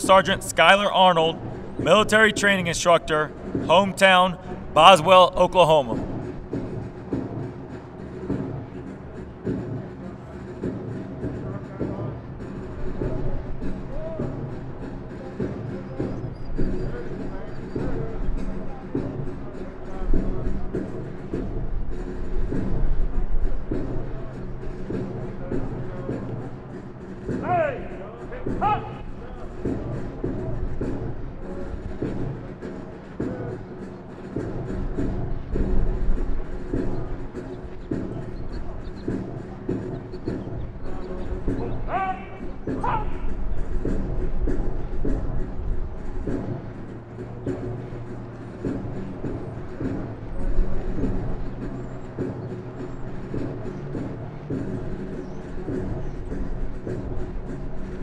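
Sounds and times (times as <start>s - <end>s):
band playing a march: 0.0s - 6.0s
voice calling out: 0.0s - 6.0s.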